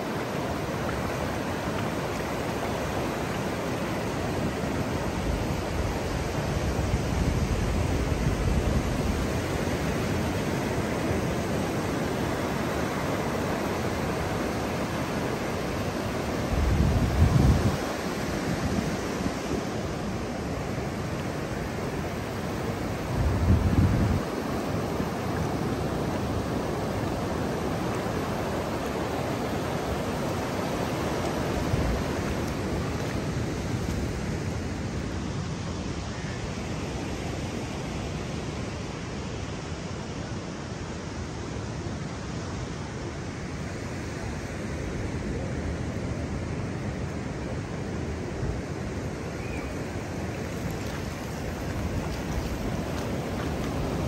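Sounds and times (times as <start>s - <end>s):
waves breaking on beach: 0.0s - 54.0s.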